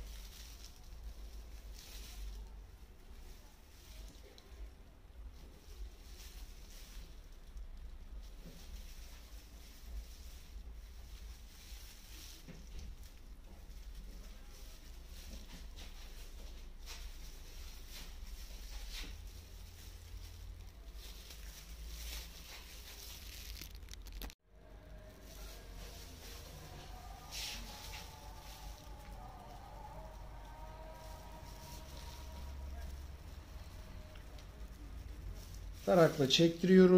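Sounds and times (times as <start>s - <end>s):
steady low rumble: 0.0s - 23.3s, 23.9s - 36.2s
brush strokes through hair: 0.0s - 24.0s, 24.6s - 36.9s
plastic gloves crinkling: 0.0s - 36.9s.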